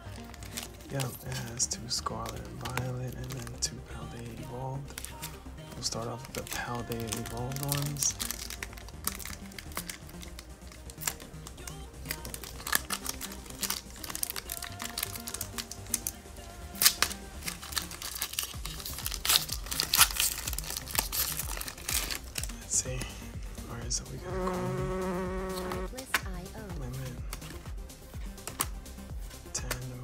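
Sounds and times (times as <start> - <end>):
foil wrapper crinkling and tearing: 0.0 - 22.6
background music: 0.0 - 30.0.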